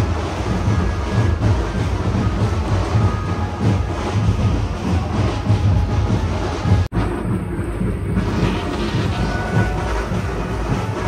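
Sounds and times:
bass-heavy procession music: 0.0 - 11.0
crowd noise: 0.0 - 11.0.

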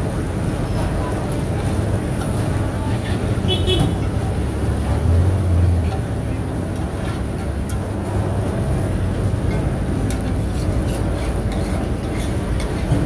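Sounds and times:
street traffic rumble: 0.0 - 13.0
metal spatula scraping a wok: 9.4 - 13.0.

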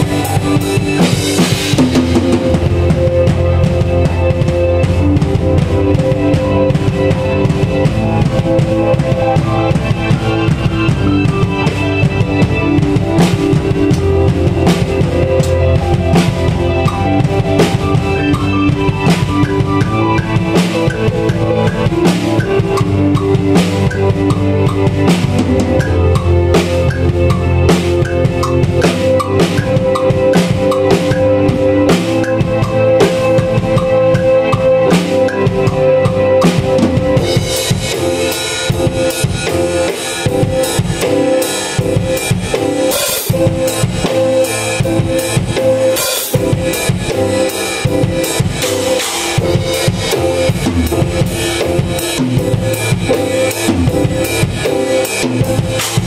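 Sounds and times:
bass drum and snare: 0.0 - 56.0
keyboard held notes: 0.0 - 56.0.

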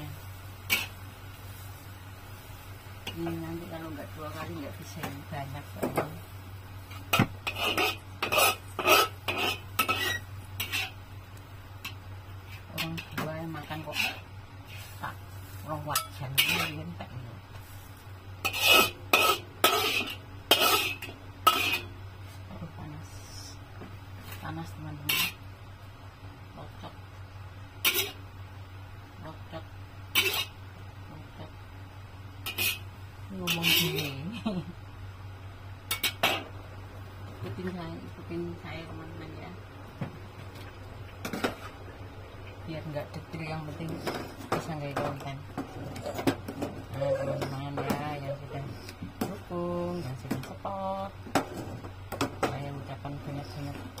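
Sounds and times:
steady low hum: 0.0 - 54.0
spatula scraping a wok: 0.6 - 1.8, 6.8 - 11.0, 11.8 - 22.4, 25.0 - 25.4, 27.8 - 28.3, 30.1 - 30.6, 32.4 - 34.2, 35.9 - 36.6, 41.2 - 41.8.

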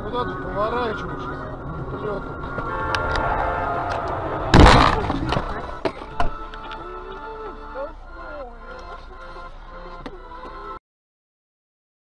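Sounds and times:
road collision crash: 2.5 - 6.5.

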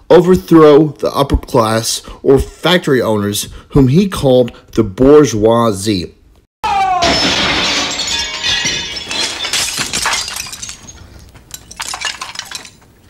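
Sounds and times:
man yelling: 6.6 - 7.5
glass smashing: 6.8 - 13.0
glass shards clinking: 7.1 - 13.0.

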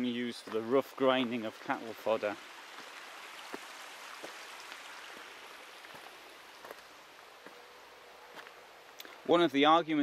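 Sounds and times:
stream water flowing: 0.0 - 9.8
faint ticks and drips: 0.4 - 7.6.

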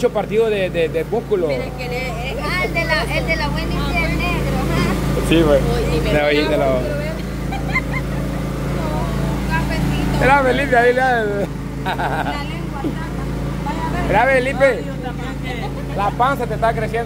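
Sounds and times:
low motor hum: 0.0 - 17.0
people talking and laughing: 0.0 - 17.0.

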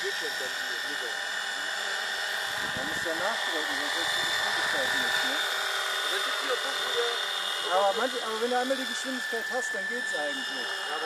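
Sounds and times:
model helicopter whine: 0.0 - 11.0.

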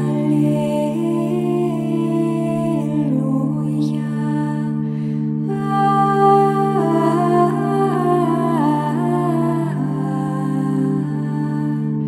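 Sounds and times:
held low drone note: 0.0 - 12.0
voices singing chant: 0.0 - 12.0.

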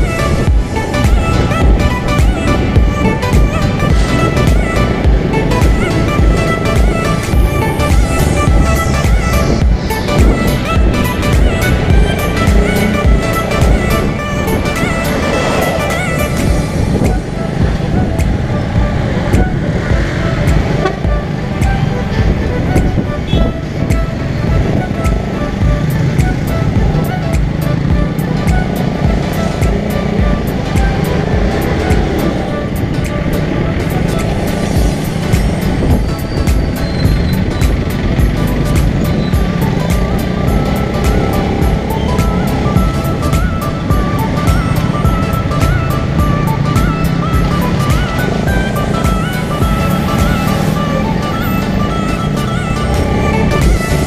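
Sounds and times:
music with steady beat: 0.0 - 54.0.

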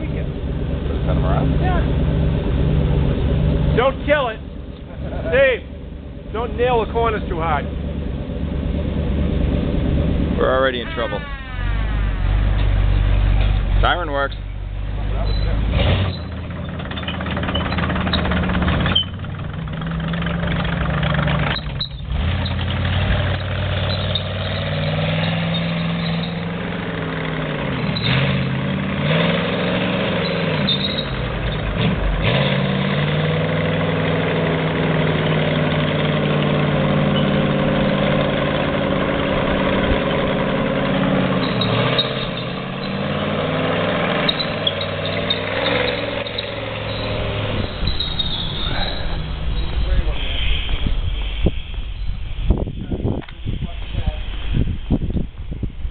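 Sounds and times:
tank engine rumbling: 0.0 - 55.9.

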